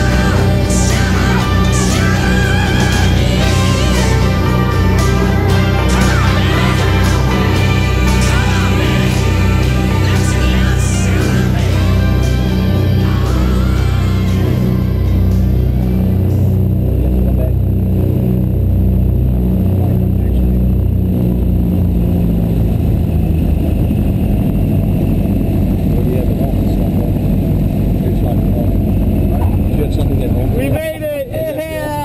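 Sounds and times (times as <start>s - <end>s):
background music: 0.0s - 18.6s
plane engines droning: 0.0s - 32.0s.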